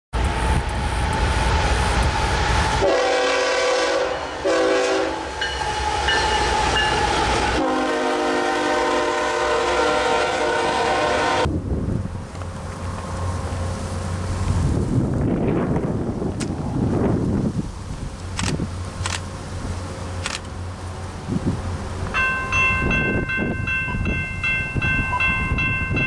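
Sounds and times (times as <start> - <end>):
diesel locomotives rumbling past: 0.2 - 26.0
multi-tone train air horn: 1.4 - 11.5.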